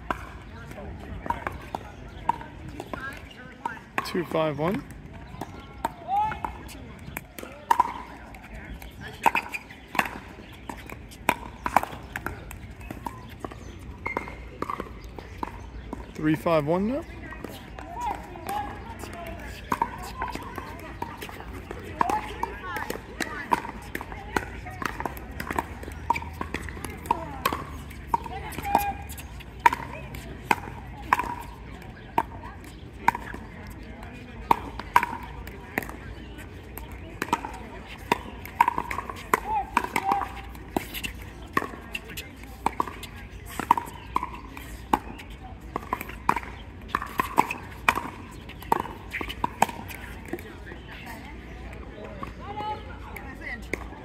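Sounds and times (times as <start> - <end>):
murmur of voices: 0.0 - 54.0.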